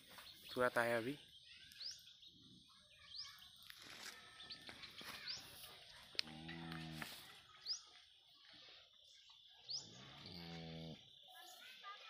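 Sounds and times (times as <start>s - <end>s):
birds chirping: 0.0s - 11.9s.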